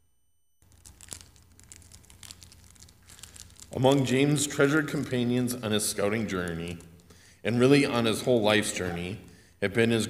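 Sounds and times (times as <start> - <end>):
faint crinkling and rustling: 0.6 - 4.2
man speaking: 3.7 - 10.0.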